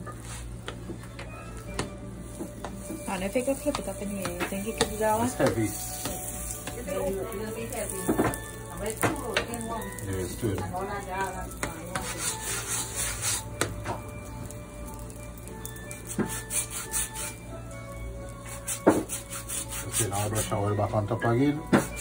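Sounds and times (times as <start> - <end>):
spatula scraping on iron pan: 11.6 - 13.7, 16.1 - 17.4, 18.4 - 20.6.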